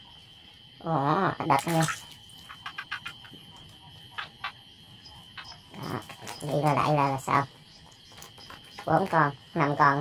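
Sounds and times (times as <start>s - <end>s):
frogs croaking: 0.0s - 10.0s
night insects droning: 0.0s - 10.0s.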